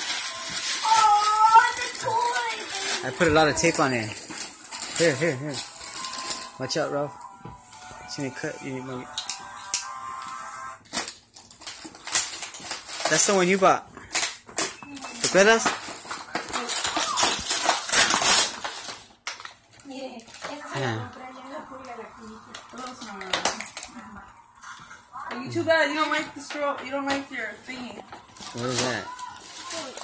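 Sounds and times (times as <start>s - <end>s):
sharp crackle: 0.0s - 6.8s, 14.1s - 24.0s, 28.4s - 30.0s
tissue paper crinkling: 0.0s - 7.1s, 10.9s - 24.1s, 27.4s - 30.0s.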